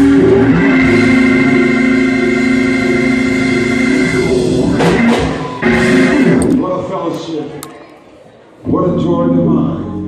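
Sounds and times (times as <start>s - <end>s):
organ chord: 0.0s - 6.6s.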